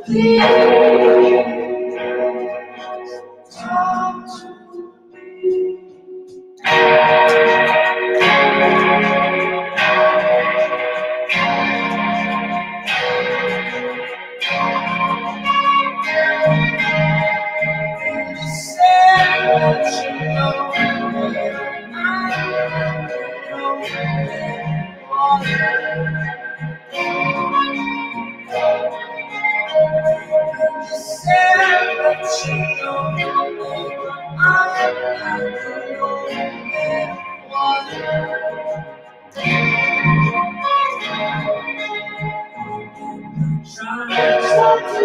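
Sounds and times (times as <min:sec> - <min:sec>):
electric guitar strumming chords: 0:00.0 - 0:45.0.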